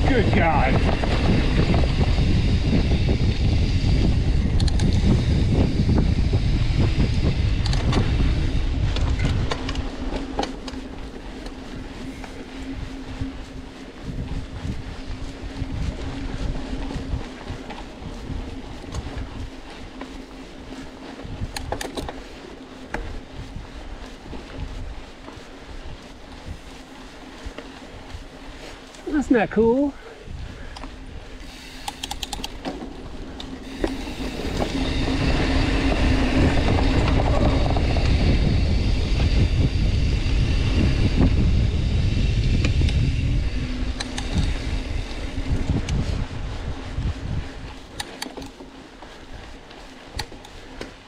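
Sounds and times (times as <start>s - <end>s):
bike clicks and rattles: 0.0s - 29.1s, 30.2s - 51.0s
bike tyres rolling on dirt: 0.0s - 51.0s
steady low hum: 0.0s - 51.0s
wind rumble on microphone: 0.0s - 51.0s.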